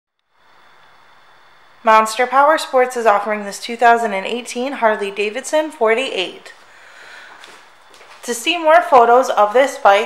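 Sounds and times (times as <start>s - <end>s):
low hiss: 0.2s - 10.0s
steady high-pitched whine: 0.2s - 10.0s
person narrating: 1.8s - 6.6s, 8.2s - 10.0s.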